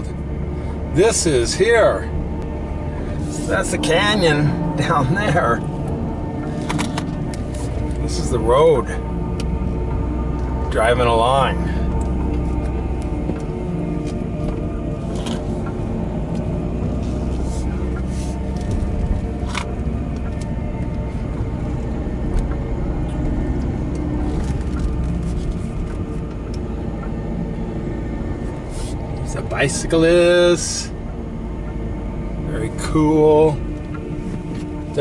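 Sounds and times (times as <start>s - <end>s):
car road and engine rumble: 0.0s - 35.0s
music playing: 0.0s - 35.0s.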